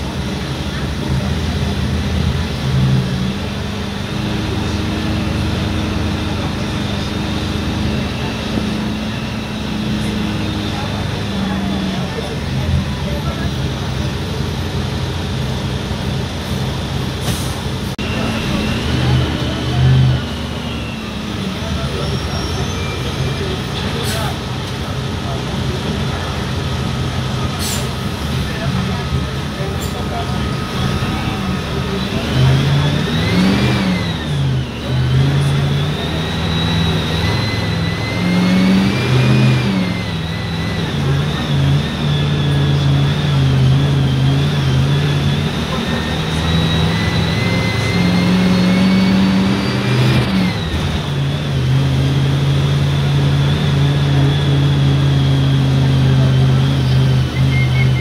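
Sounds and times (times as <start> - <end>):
bus diesel engine accelerating: 0.0 - 58.0.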